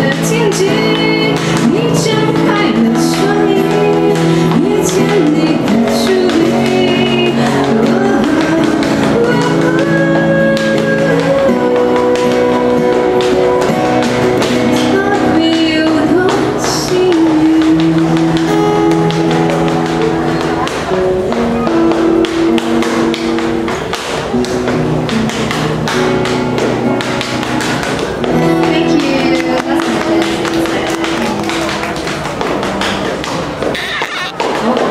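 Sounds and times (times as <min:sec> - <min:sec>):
acoustic guitar chords: 0:00.0 - 0:34.8
quick sharp taps: 0:00.0 - 0:34.9.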